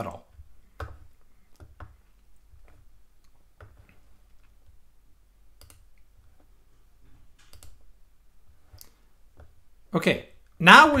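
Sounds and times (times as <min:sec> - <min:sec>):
low room hum: 0:00.0 - 0:11.0
faint computer clicks: 0:07.4 - 0:07.8.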